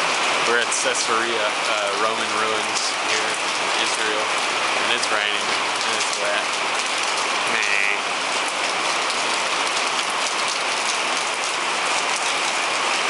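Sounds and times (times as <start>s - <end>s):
raindrops striking close by: 0.0s - 13.0s
steady rain hiss: 0.0s - 13.0s.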